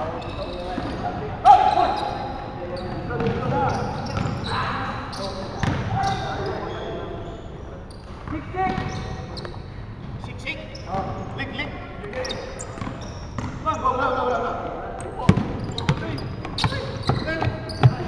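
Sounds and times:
players calling out: 0.0s - 18.0s
basketball bouncing: 5.6s - 5.9s, 12.8s - 13.6s, 15.2s - 18.0s
feet on hardwood court: 15.3s - 18.0s.

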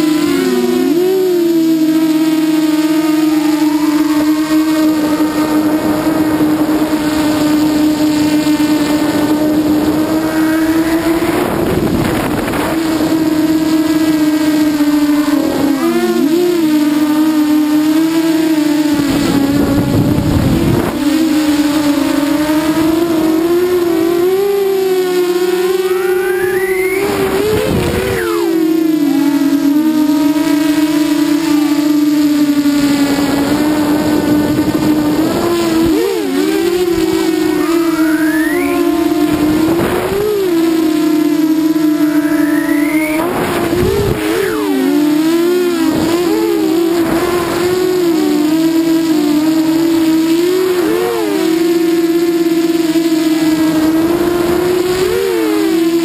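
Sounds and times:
drone motors whining: 0.0s - 56.0s.

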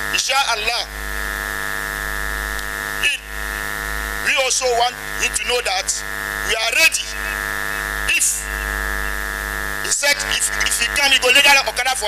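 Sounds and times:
electrical buzzing hum: 0.0s - 12.0s.

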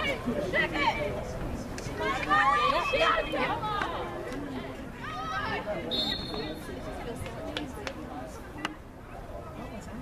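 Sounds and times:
voices calling out and talking: 0.0s - 10.0s.

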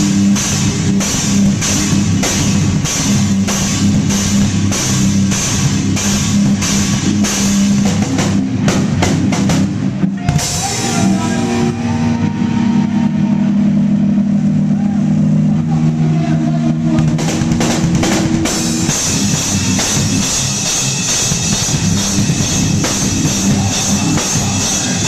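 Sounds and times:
fast rock drumming: 0.0s - 25.0s
held guitar chords: 9.8s - 25.0s.

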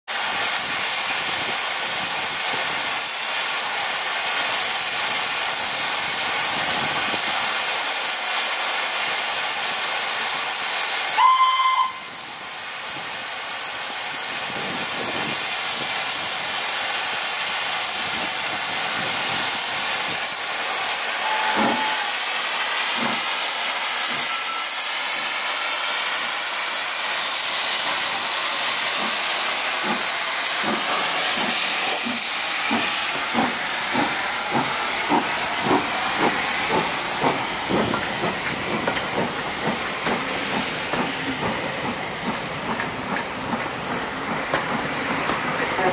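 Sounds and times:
steam locomotive hissing: 0.1s - 45.9s
steam whistle blast: 11.1s - 12.2s, 21.0s - 22.9s, 24.1s - 26.2s.

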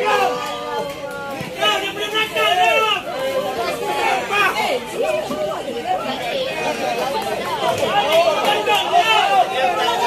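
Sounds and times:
voices shouting and chattering: 0.0s - 10.0s.

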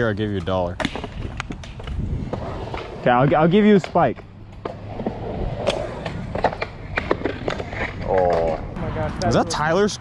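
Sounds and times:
wheels rolling on concrete: 0.0s - 9.7s.

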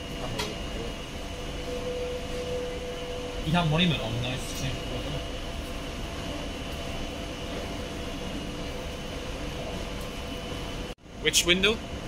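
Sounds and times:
train humming: 0.0s - 12.0s
faint steady tones: 1.2s - 7.3s.

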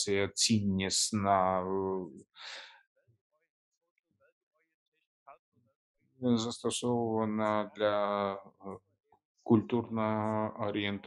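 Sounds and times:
person inhaling at microphone: 2.4s - 2.8s.

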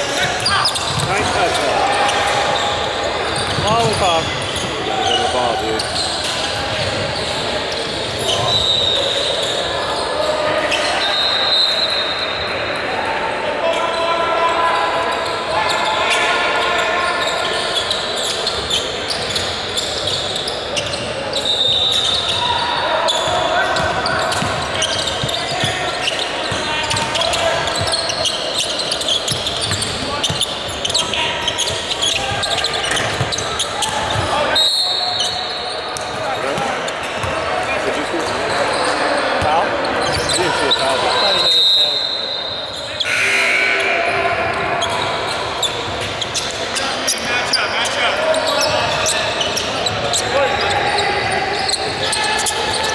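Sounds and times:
background chatter: 0.0s - 52.9s.

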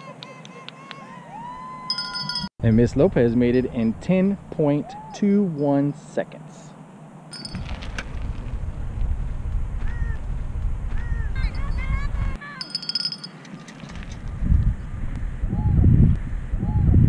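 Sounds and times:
low rumbling wind noise: 7.4s - 12.4s, 13.8s - 17.0s.

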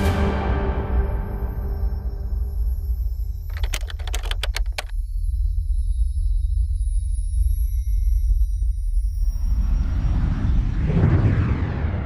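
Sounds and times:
low music drone: 0.0s - 3.2s
keystroke clicks: 3.5s - 4.9s.

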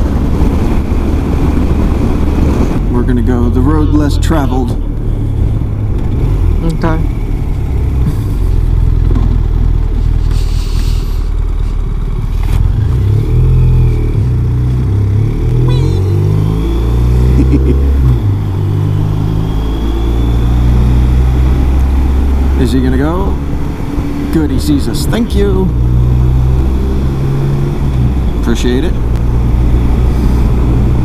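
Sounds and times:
motorcycle engine accelerating: 0.0s - 31.0s.

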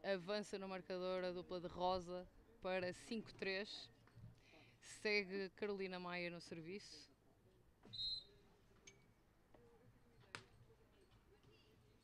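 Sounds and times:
shrill referee whistle: 7.9s - 8.4s.

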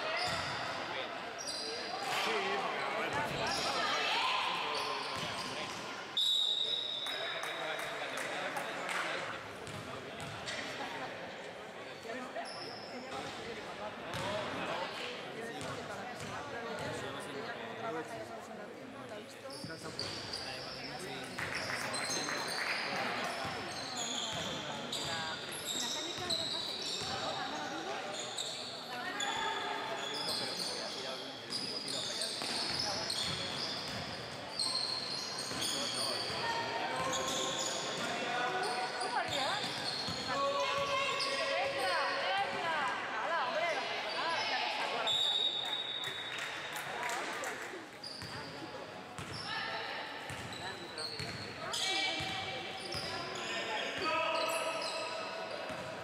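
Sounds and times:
sneaker squeaks on floor: 0.0s - 4.0s, 4.6s - 7.9s, 9.6s - 10.7s, 12.1s - 13.5s, 19.4s - 42.3s, 44.0s - 46.6s, 48.0s - 56.0s
basketball bouncing on court: 0.2s - 0.6s, 9.6s - 10.4s, 14.1s - 14.3s, 32.4s - 34.1s, 49.2s - 49.4s, 50.3s - 50.6s, 51.2s - 51.5s, 55.7s - 55.9s.

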